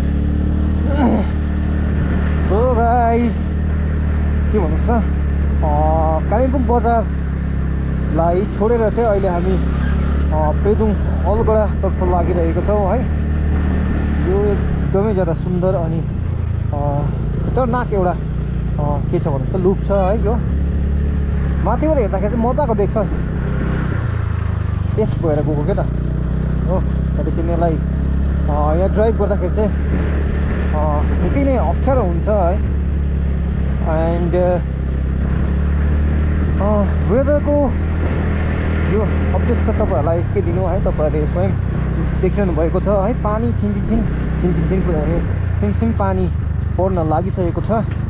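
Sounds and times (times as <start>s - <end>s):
motorcycle engine rumble: 0.0s - 48.0s
man's voice: 0.9s - 1.4s, 2.4s - 3.5s, 4.5s - 7.1s, 8.1s - 9.6s, 10.3s - 13.1s, 14.2s - 16.1s, 16.7s - 18.2s, 18.8s - 20.5s, 21.6s - 23.1s, 24.9s - 25.9s, 26.7s - 27.8s, 28.5s - 29.8s, 30.7s - 32.6s, 33.8s - 34.7s, 36.5s - 37.8s, 38.8s - 41.6s, 42.2s - 48.0s.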